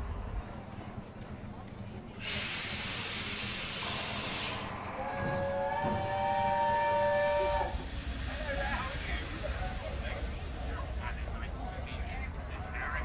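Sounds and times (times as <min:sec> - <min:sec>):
steam hissing from a locomotive: 0:02.2 - 0:11.7
chord steam whistle: 0:03.4 - 0:07.9.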